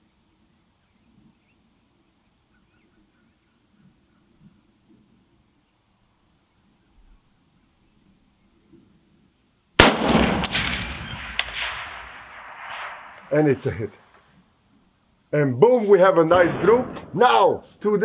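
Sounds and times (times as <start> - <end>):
rifle shot with echo: 9.8 - 13.4.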